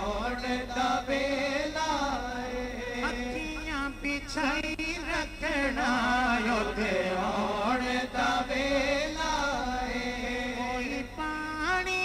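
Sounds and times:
men chanting unaccompanied: 0.0s - 12.0s.

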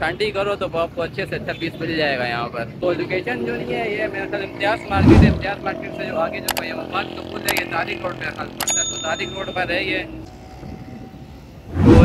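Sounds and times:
road traffic: 0.0s - 12.0s
vehicle passing close by: 2.8s - 8.6s.

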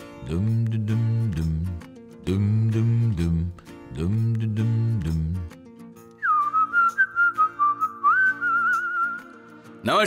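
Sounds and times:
soft backing music: 0.0s - 10.0s
person whistling a tune: 6.2s - 9.6s.

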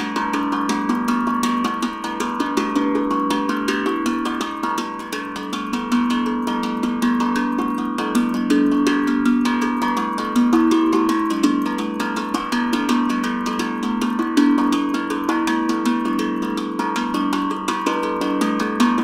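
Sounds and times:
steel tongue drum played by hand: 0.0s - 19.0s.

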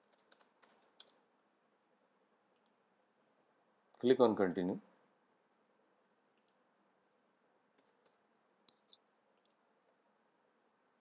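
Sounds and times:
computer keyboard and mouse clicks: 0.0s - 1.2s, 7.8s - 9.6s.

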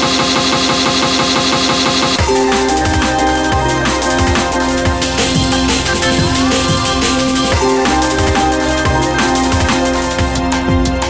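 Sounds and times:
stuttering electronic breakbeat: 0.0s - 11.0s
sustained synth tones: 2.2s - 11.0s.

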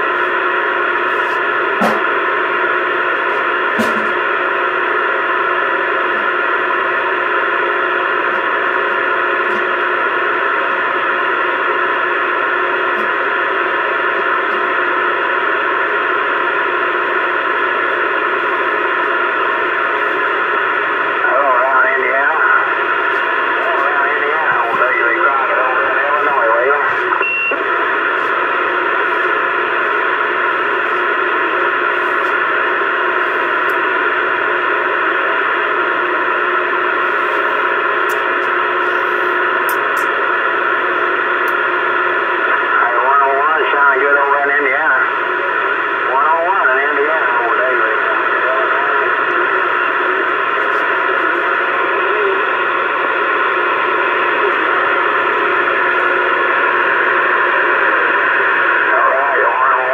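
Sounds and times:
radio static hiss: 0.0s - 59.9s.

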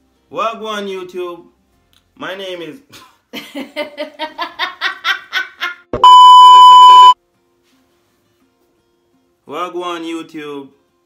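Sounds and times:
high test tone beep: 6.0s - 7.2s.

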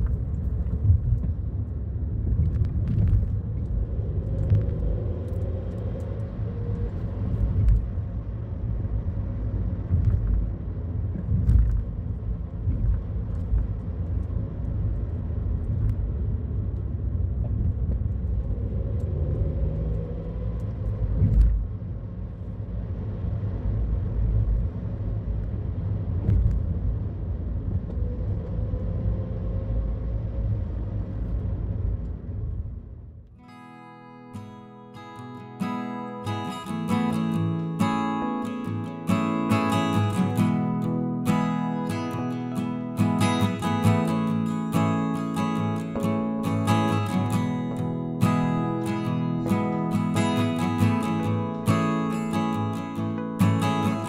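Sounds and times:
engine and tyre rumble: 0.0s - 33.5s, 34.5s - 54.0s.

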